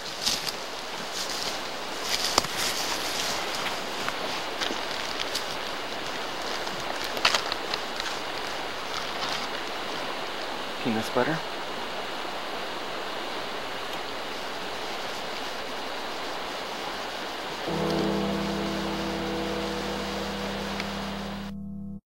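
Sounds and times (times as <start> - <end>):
rushing hiss of outdoor noise: 0.0 - 20.7
held low musical chord: 17.7 - 22.0.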